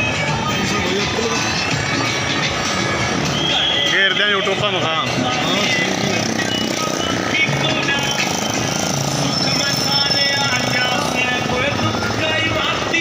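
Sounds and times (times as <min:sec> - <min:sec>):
music: 0:00.0 - 0:13.0
people's voices: 0:00.0 - 0:13.0
small motorcycle engines running: 0:05.3 - 0:13.0.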